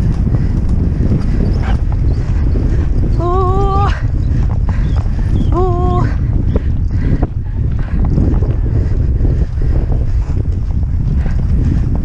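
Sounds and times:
horse hoofbeats on grass: 0.0 - 12.0
wind rumble on microphone: 0.0 - 12.0.

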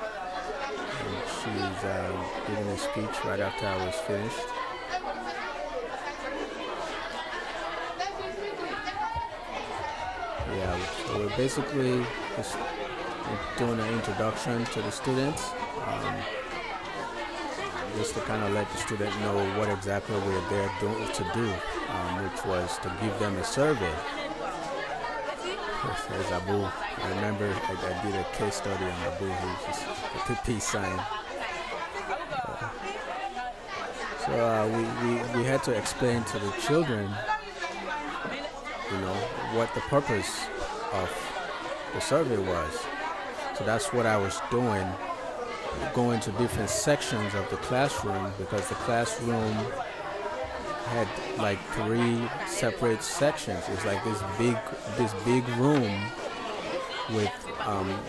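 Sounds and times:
background chatter: 0.0 - 58.0.

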